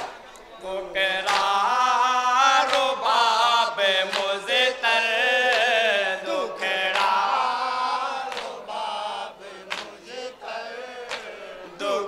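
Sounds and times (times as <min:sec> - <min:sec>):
men chanting in unison: 0:00.6 - 0:12.0.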